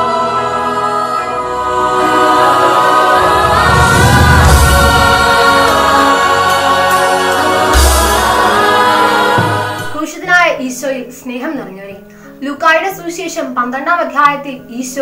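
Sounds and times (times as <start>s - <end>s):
choral music: 0.0s - 12.5s
deep low hits with swish: 3.1s - 6.2s.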